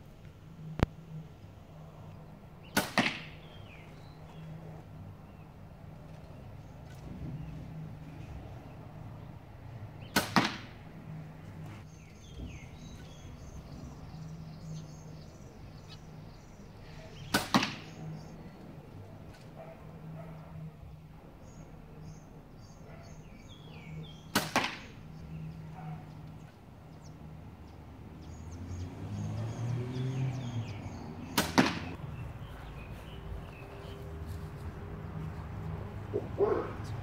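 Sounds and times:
arrow striking target: 2.7s - 3.4s, 10.1s - 10.8s, 17.3s - 18.0s, 24.3s - 24.9s, 31.3s - 32.0s.

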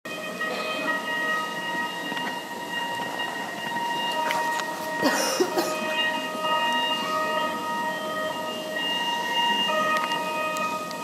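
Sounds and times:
murmur of hall noise: 0.1s - 11.0s.

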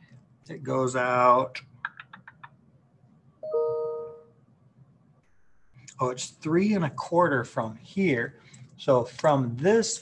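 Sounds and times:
two-note electronic chime: 3.4s - 4.3s.

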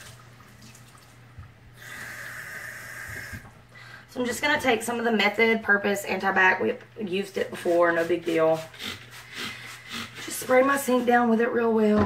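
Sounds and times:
faucet water running into sink: 0.0s - 3.5s
sponge rinsed under water: 7.4s - 11.5s.

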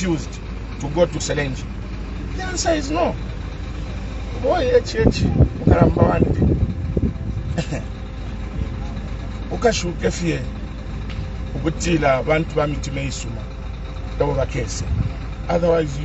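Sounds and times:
road traffic rumble: 0.0s - 16.0s
man speaking: 2.4s - 3.2s, 4.4s - 6.5s, 9.5s - 10.5s, 11.6s - 13.4s, 14.2s - 14.9s, 15.5s - 16.0s.

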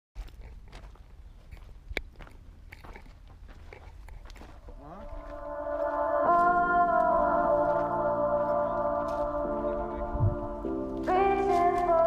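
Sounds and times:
footsteps on gravel: 0.2s - 10.0s, 10.8s - 12.0s
music with sustained chords: 5.3s - 12.0s
wind rumble on microphone: 9.4s - 10.7s.

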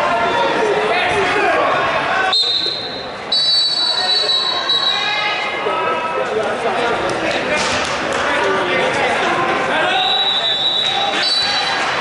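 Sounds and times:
voices in a gym: 0.0s - 12.0s.

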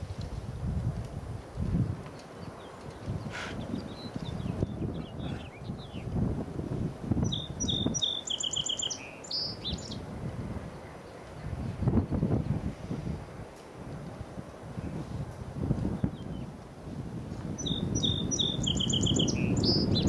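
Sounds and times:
songbird chirping and trilling: 2.3s - 6.2s, 7.2s - 10.1s, 17.6s - 20.0s
gusting low rumble: 9.6s - 20.0s.

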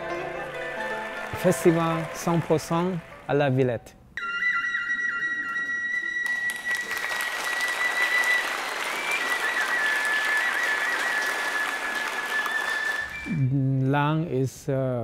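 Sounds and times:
audience applause: 0.0s - 3.4s, 6.2s - 13.3s
flute holding long high note: 4.2s - 13.3s.

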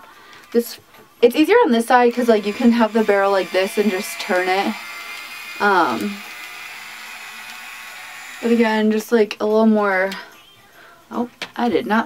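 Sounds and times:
hair styler hissing: 2.1s - 9.0s
faint motor whir: 2.1s - 9.1s.

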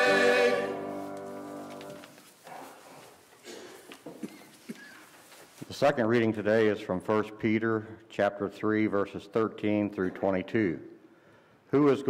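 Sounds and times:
soft footsteps: 0.0s - 5.8s.

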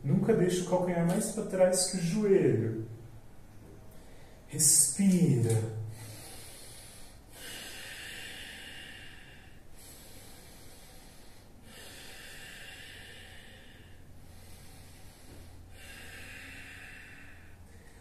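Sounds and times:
man breathing deeply: 3.9s - 4.5s, 5.9s - 18.0s.

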